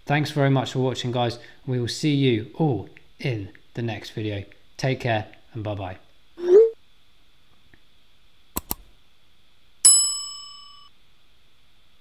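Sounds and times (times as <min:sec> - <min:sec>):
notification bell ding: 0:09.9 - 0:10.9.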